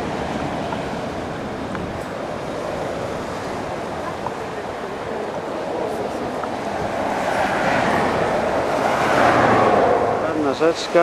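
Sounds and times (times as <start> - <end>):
motorway traffic rushing: 0.0 - 11.0
vehicle passing: 5.0 - 11.0.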